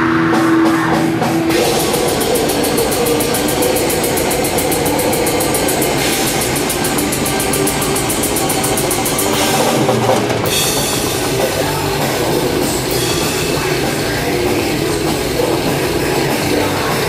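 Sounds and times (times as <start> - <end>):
drum kit played fast: 0.0 - 17.0
heavy metal band playing: 0.0 - 17.0.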